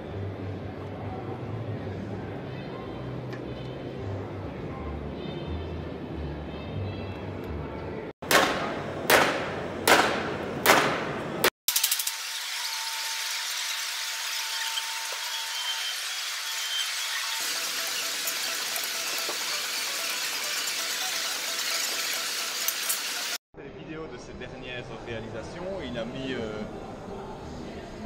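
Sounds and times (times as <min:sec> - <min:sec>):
high hissing metallic squeal: 0:12.3 - 0:23.4.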